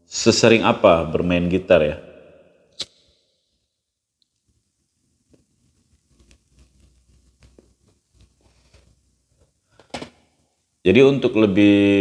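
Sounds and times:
man speaking: 0:00.0 - 0:02.0, 0:10.9 - 0:12.0
rustling near microphone: 0:05.3 - 0:09.5.

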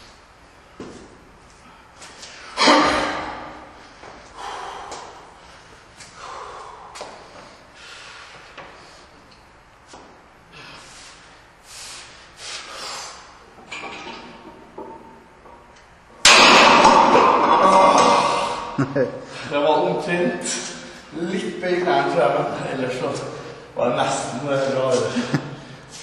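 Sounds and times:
barbell slamming onto metal pins: 0:16.2 - 0:18.7.

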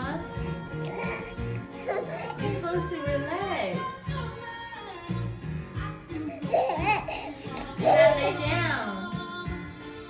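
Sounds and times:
background music: 0:00.0 - 0:10.0
infant laughing in squealing bursts: 0:00.9 - 0:02.6, 0:06.4 - 0:08.4.

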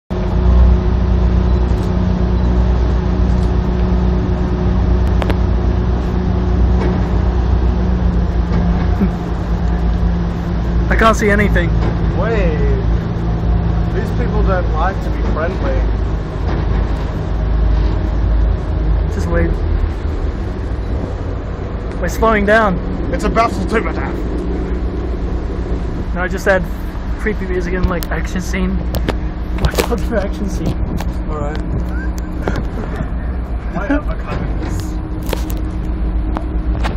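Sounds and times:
ferry engine droning: 0:00.1 - 0:36.9
muffled wind rumble: 0:00.1 - 0:36.9.

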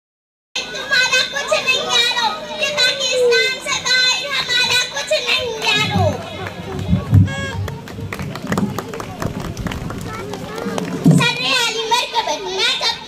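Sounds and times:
girl giving speech through microphone: 0:00.6 - 0:07.9, 0:09.8 - 0:13.0
microphone handling thuds: 0:05.8 - 0:10.1.

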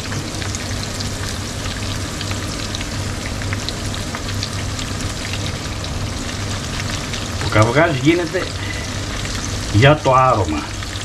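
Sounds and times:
eggs and pork sizzling in oil: 0:00.0 - 0:11.0.

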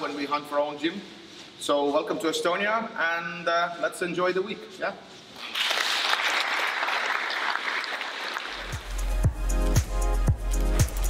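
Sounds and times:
person speaking: 0:00.0 - 0:05.1
people clapping: 0:05.4 - 0:09.1
music with heavy bass beat: 0:08.6 - 0:11.0.

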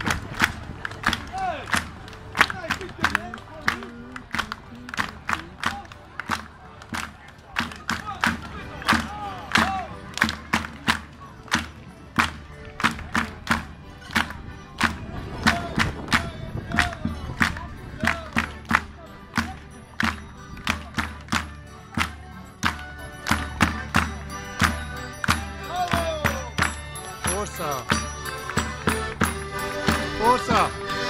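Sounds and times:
sharp hand percussion beat: 0:00.0 - 0:31.0
voices calling and singing: 0:00.0 - 0:31.0.

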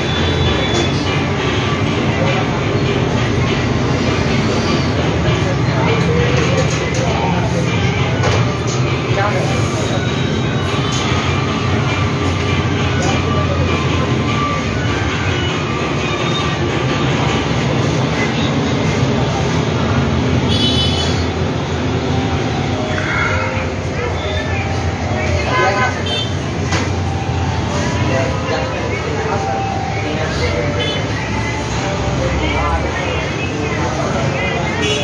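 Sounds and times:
indistinct voices: 0:00.0 - 0:35.0.

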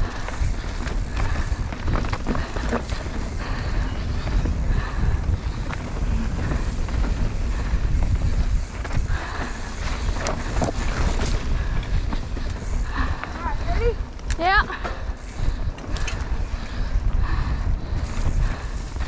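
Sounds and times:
bike knocks and rattles: 0:00.0 - 0:13.4
wind buffeting microphone: 0:00.0 - 0:19.0.

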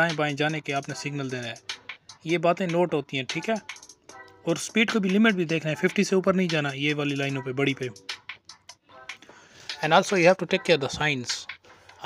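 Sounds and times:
man talking: 0:00.0 - 0:01.6, 0:02.2 - 0:03.7, 0:04.4 - 0:08.0, 0:09.7 - 0:11.5.

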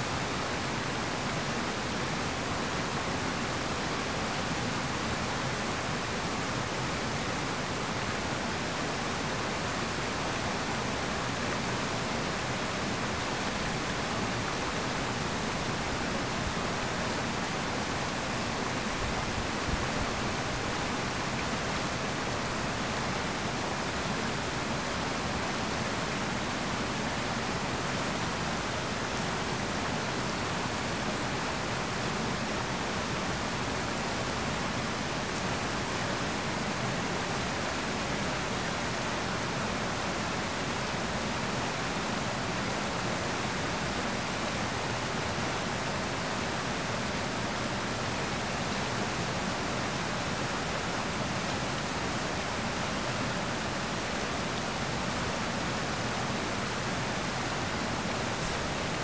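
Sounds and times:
river white water rushing: 0:00.0 - 0:59.0.

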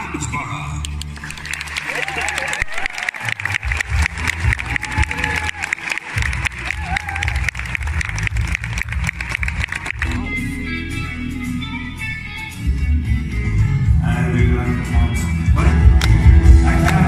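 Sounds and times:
audience clapping: 0:00.8 - 0:10.3, 0:16.8 - 0:17.0
live band music: 0:03.2 - 0:17.0.

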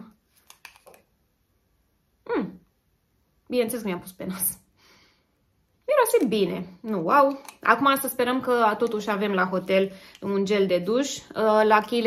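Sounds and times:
bottle screw cap clicking: 0:00.4 - 0:01.0, 0:07.3 - 0:07.7.

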